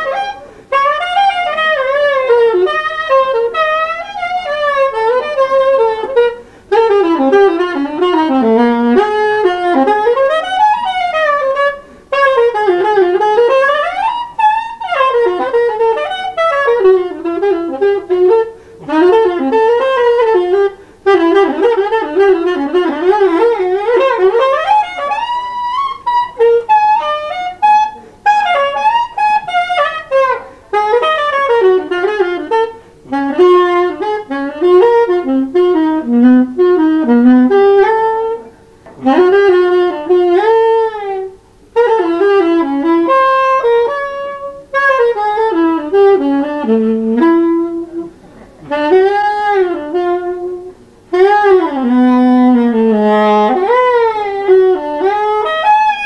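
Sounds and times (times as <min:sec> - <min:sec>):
soprano saxophone improvising: 0:00.0 - 0:56.0.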